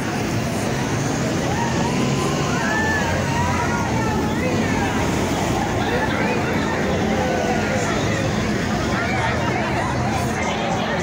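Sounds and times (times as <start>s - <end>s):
crowd chatter: 0.0s - 11.0s
traffic rumble: 0.0s - 11.0s.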